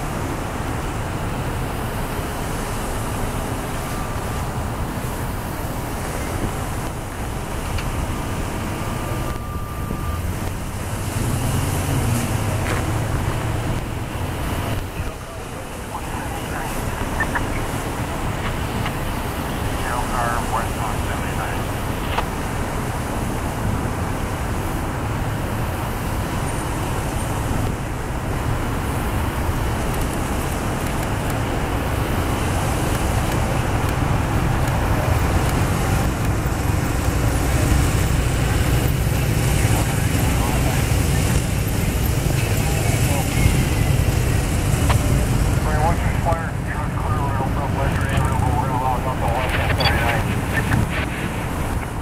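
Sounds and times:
motorcycle and vehicle engines rumbling: 0.0s - 52.0s
cars driving past: 5.0s - 52.0s
bystanders' voices: 12.4s - 22.6s, 32.7s - 52.0s.

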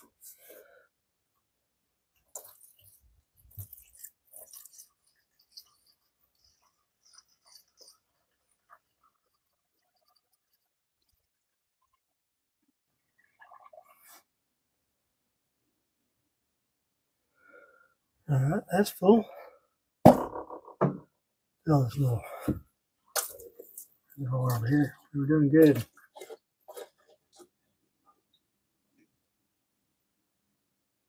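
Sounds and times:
liquid glugging and trickling: 2.2s - 14.3s.

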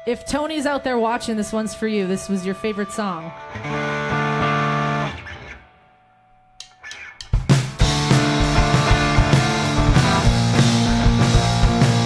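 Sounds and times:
ringing electric guitar chord: 0.0s - 6.6s, 7.8s - 12.0s
drumstick clicks: 6.6s - 7.8s
loud punk band playing: 7.2s - 12.0s.

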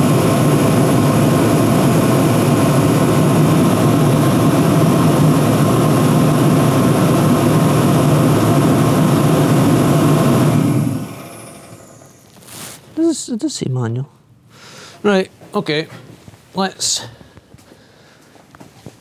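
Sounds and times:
space heater fan and burner roar: 0.0s - 13.4s.

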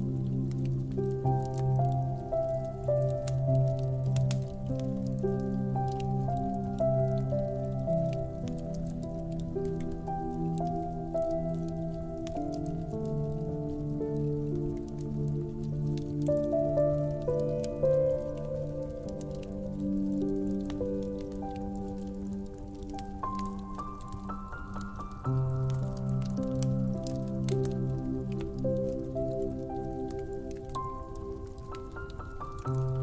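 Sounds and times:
slow soft piano music: 0.0s - 33.0s
wood fire crackling: 0.0s - 33.0s.

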